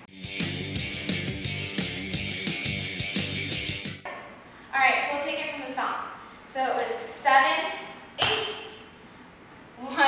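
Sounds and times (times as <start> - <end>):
woman speaking: 4.7 - 8.7, 9.8 - 10.0.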